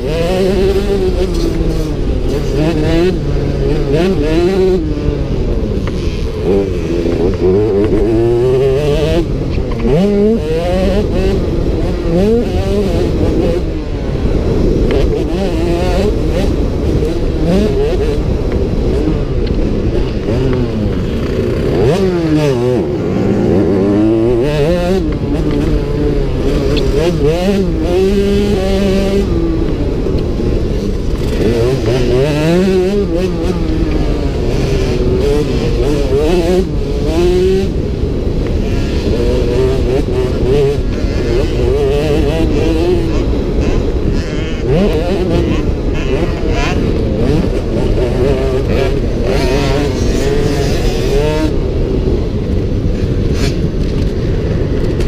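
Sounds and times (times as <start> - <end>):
motocross engine revving: 0.0 - 55.0.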